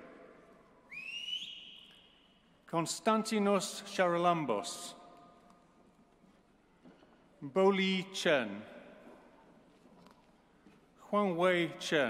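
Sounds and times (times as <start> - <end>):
person whistling: 0.9 - 2.3.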